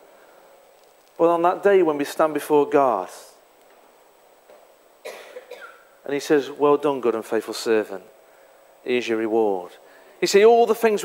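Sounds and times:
short cough: 0:05.0 - 0:05.9.

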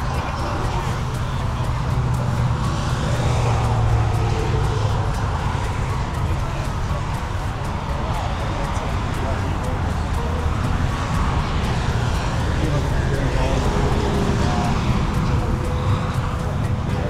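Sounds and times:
low rumble: 0:00.0 - 0:17.0
music: 0:00.0 - 0:17.0
voices: 0:00.0 - 0:17.0.

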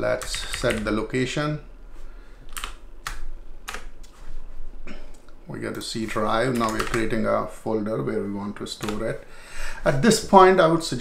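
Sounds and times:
computer keyboard keystrokes: 0:00.2 - 0:00.9, 0:02.5 - 0:04.2, 0:06.1 - 0:07.1, 0:08.8 - 0:09.1.

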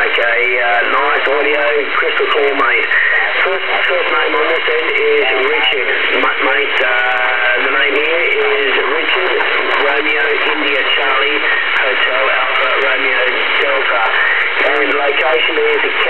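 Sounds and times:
radio static: 0:00.0 - 0:16.0
radio voice through speaker: 0:00.0 - 0:16.0.

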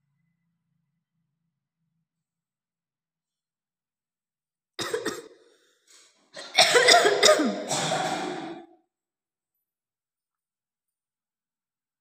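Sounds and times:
person coughing: 0:04.8 - 0:05.4, 0:06.4 - 0:08.7.

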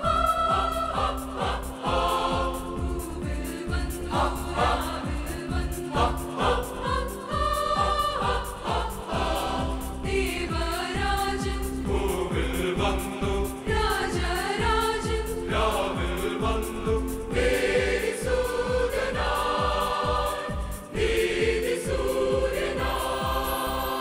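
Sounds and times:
mixed choir singing: 0:00.0 - 0:24.0.

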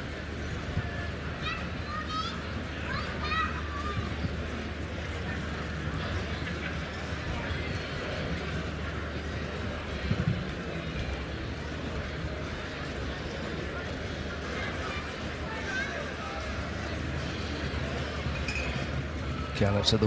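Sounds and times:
murmur of spectators: 0:00.0 - 0:20.0.

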